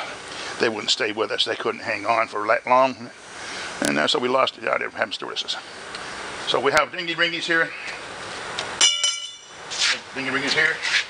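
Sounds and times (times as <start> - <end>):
small metal bell ringing: 8.8 - 9.6
brief hiss: 9.7 - 10.1.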